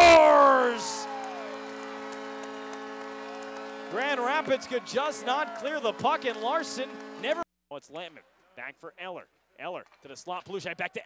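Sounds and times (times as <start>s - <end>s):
goal horn chord: 0.0s - 7.4s.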